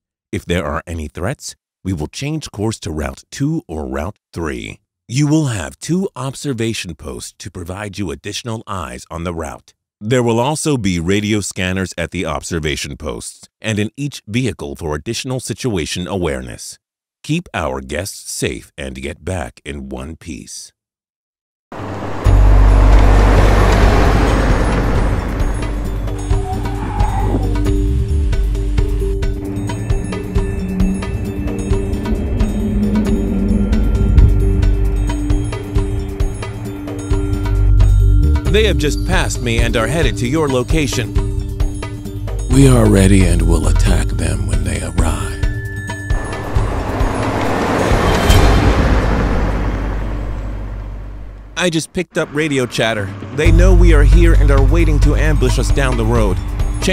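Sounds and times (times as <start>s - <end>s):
vehicle engine rumbling: 21.7s - 36.9s, 46.1s - 51.6s, 52.3s - 56.9s
road noise: 21.7s - 38.6s, 46.1s - 56.9s.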